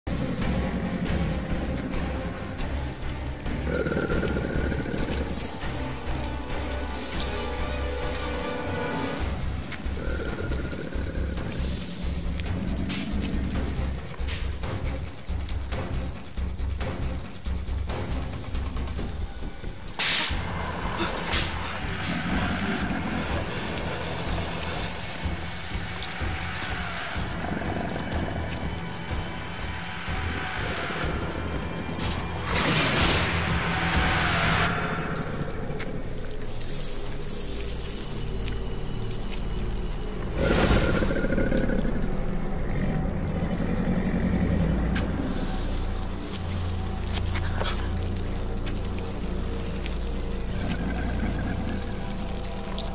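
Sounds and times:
tense film score with low bass: 0:00.0 - 0:52.9.

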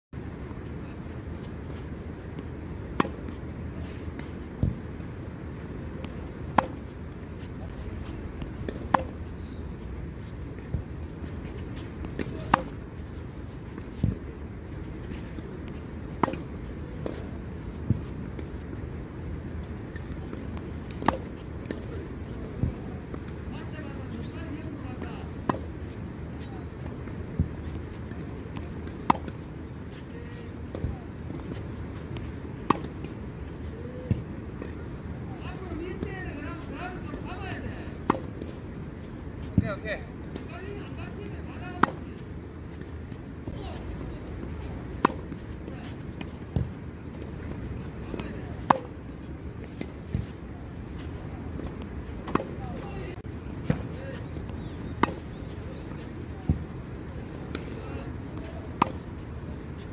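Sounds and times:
racket hitting tennis ball: 0:02.9 - 0:04.8, 0:06.0 - 0:06.9, 0:08.4 - 0:09.2, 0:12.0 - 0:12.8, 0:16.1 - 0:17.2, 0:19.9 - 0:21.9, 0:25.4 - 0:25.8, 0:27.4 - 0:30.0, 0:30.7 - 0:33.2, 0:38.0 - 0:38.6, 0:41.6 - 0:42.9, 0:44.8 - 0:46.8, 0:47.5 - 0:50.3, 0:51.6 - 0:52.6, 0:54.9 - 0:55.4, 0:58.4 - 0:59.2.

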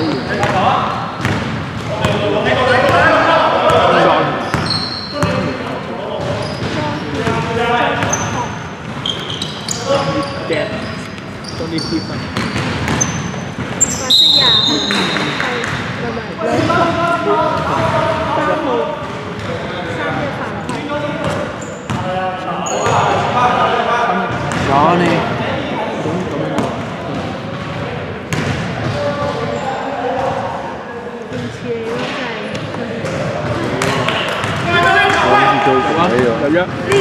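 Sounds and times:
sneakers squeaking: 0:00.0 - 0:18.3, 0:19.0 - 0:23.4, 0:26.6 - 0:37.0
voices in background: 0:00.0 - 0:37.0.

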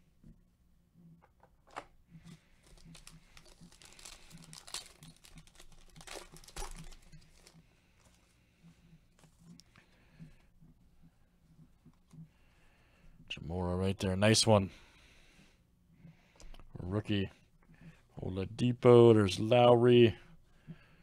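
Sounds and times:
foil wrapper tearing and crinkling: 0:02.6 - 0:07.6.

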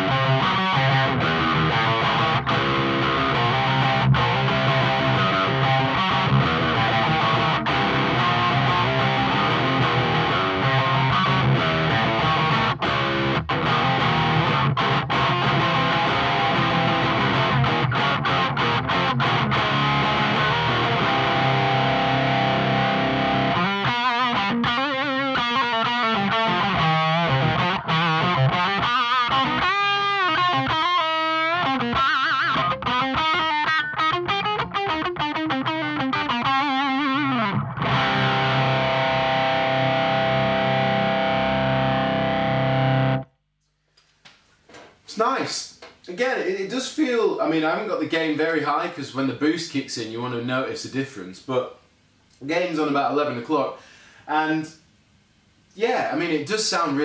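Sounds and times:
distorted electric guitar: 0:00.0 - 0:43.5.

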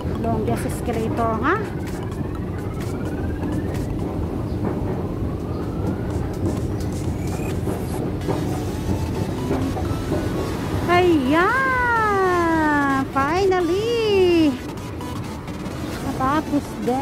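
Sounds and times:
escalator rumble: 0:00.0 - 0:17.0.

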